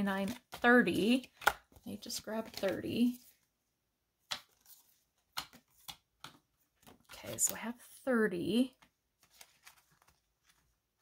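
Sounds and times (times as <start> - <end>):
paper banknotes rustling: 9.1 - 11.0.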